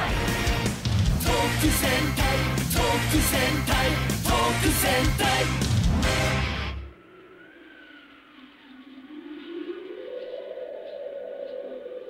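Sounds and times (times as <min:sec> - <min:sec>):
sustained drone-like tone: 0:06.6 - 0:12.0.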